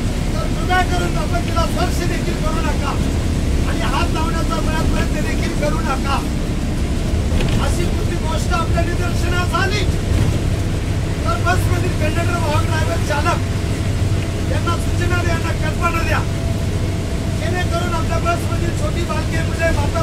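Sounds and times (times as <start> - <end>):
bus engine rumble: 0.0 - 20.0
man speaking loudly: 0.2 - 6.6, 7.5 - 10.1, 11.1 - 13.6, 14.4 - 16.4, 17.3 - 20.0.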